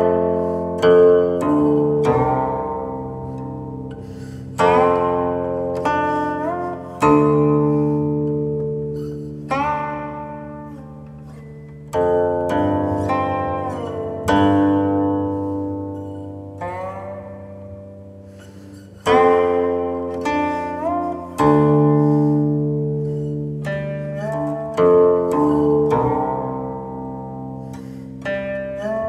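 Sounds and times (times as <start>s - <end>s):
plucked zither melody: 0.0s - 29.0s.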